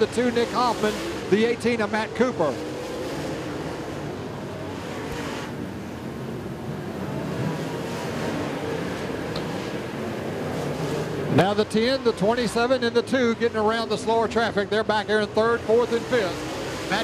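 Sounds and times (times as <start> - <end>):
race car engines droning: 0.0 - 17.0.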